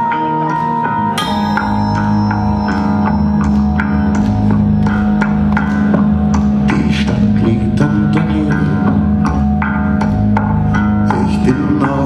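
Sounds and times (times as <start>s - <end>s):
live band playing: 0.0s - 12.0s
sharp percussive hits: 1.2s - 7.6s.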